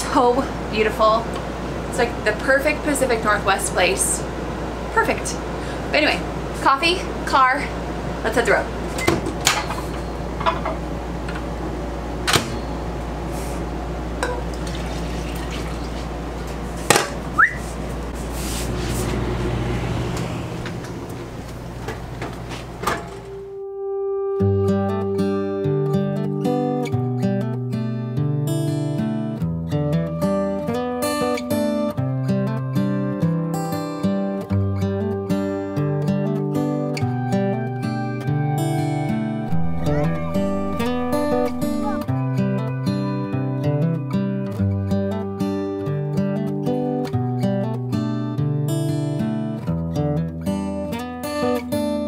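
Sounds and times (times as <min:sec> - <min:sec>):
acoustic guitar music: 0:06.6 - 0:52.0
cups and dishes clinking: 0:09.1 - 0:10.8, 0:14.2 - 0:15.5
rising squeak: 0:39.5 - 0:42.8
low hum: 0:39.5 - 0:45.1.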